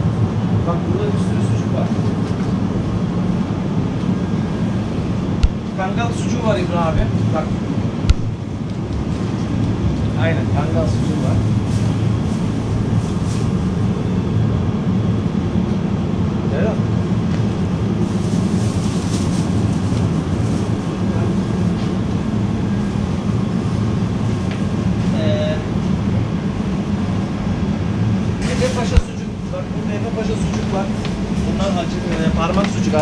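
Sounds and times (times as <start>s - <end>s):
fans and machinery: 0.0s - 33.0s
refrigerated display cases humming: 0.0s - 33.0s.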